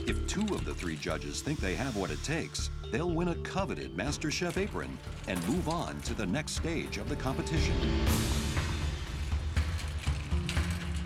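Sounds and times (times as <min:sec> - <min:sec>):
metal cart rattling and clicking: 0:00.0 - 0:02.4, 0:04.0 - 0:11.0
music with pulsing low beat: 0:00.0 - 0:11.0.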